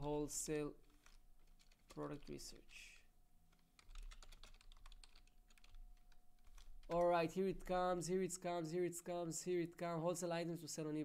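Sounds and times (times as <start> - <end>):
keyboard typing: 0.0 - 7.9.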